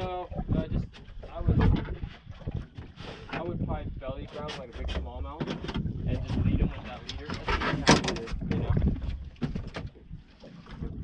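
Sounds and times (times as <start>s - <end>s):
low rumble on microphone: 0.0s - 11.0s
water around boat: 0.0s - 11.0s
wind: 0.0s - 11.0s.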